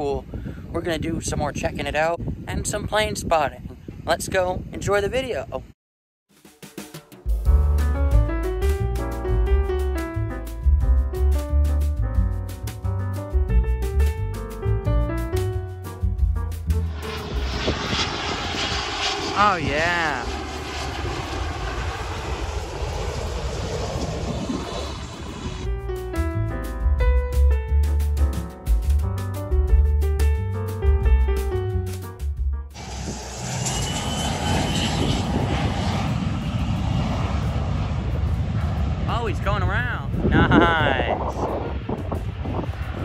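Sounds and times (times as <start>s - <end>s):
background piano music: 7.0s - 17.7s, 25.7s - 32.8s
jet roar on approach: 16.7s - 25.8s, 32.8s - 43.0s.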